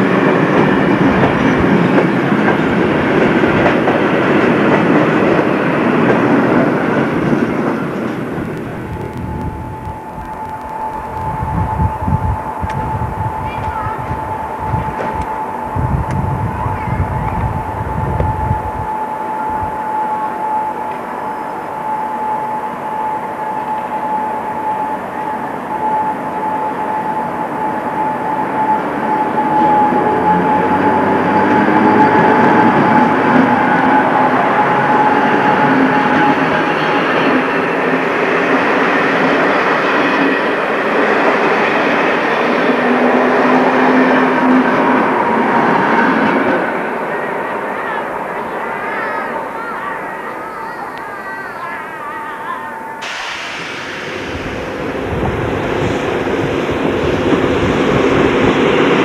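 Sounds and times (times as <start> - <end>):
electric train passing: 0.0 - 59.0
steady high whine: 6.9 - 47.2, 51.8 - 59.0.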